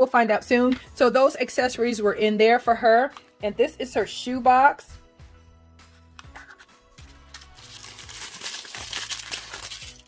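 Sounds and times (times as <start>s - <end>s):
packaging wrap crinkling: 7.0s - 10.0s.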